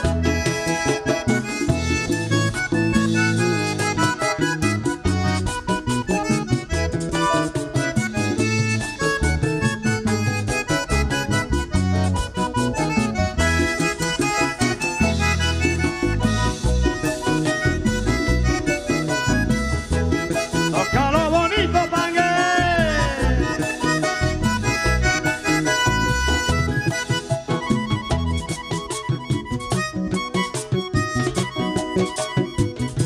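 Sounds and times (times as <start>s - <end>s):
bass: 0.0s - 33.0s
button accordion playing: 0.0s - 33.0s
percussion: 0.0s - 33.0s.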